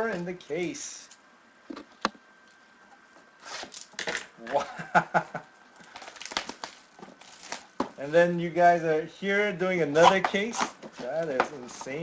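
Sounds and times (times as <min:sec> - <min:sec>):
plastic shrink wrap crinkling: 0:05.8 - 0:08.1.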